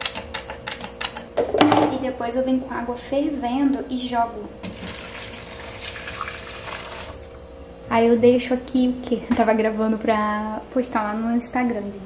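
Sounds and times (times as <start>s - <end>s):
water pouring and splashing: 4.6s - 7.4s.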